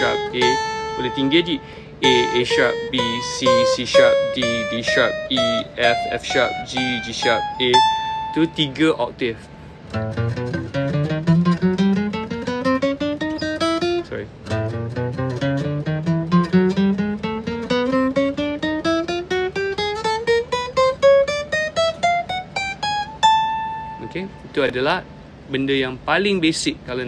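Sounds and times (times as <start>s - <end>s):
acoustic guitar picking scale: 0.0s - 26.7s.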